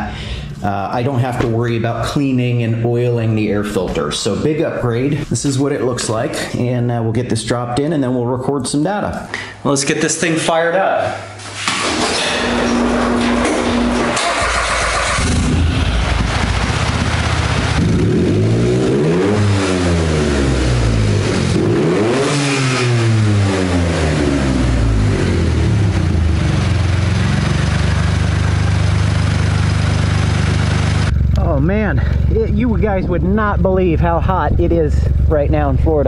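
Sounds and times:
buggy engine starting and revving: 11.8s - 36.0s.

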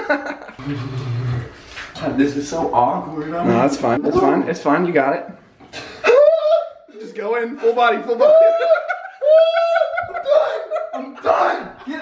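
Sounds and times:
laughter: 0.0s - 0.6s, 8.3s - 12.0s
man's high-pitched strained cry: 6.0s - 6.8s.

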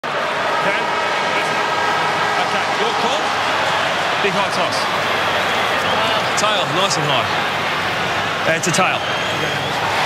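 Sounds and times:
stadium crowd hubbub: 0.0s - 10.0s.

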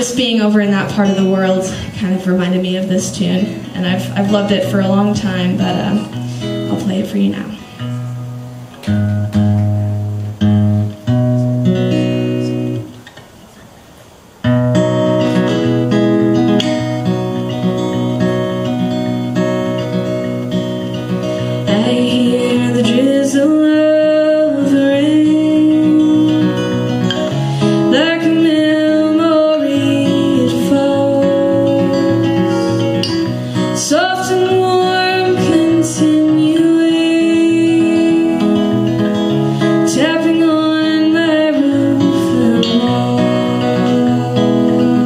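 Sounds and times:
woman singing: 0.0s - 7.8s, 21.4s - 45.0s
acoustic guitar playing: 0.0s - 45.0s.

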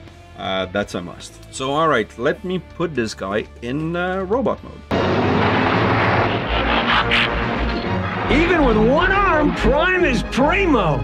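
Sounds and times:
deep rumble: 4.9s - 10.6s
cartoon racing car engine rush: 4.9s - 11.0s.

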